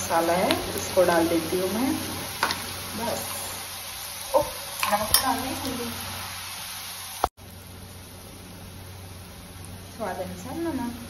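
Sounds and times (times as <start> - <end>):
onions sizzling in oil: 0.0 - 11.0.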